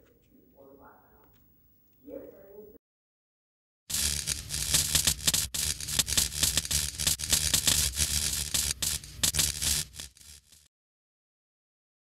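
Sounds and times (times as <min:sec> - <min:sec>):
fire crackling and hissing: 0:03.9 - 0:10.7.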